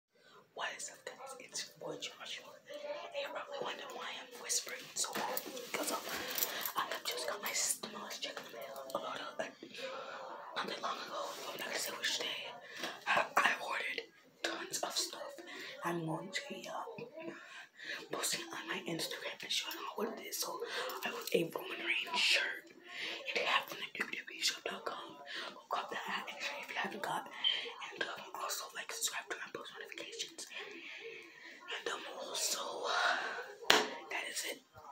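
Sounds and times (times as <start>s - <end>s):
person whispering: 0.5s - 34.9s.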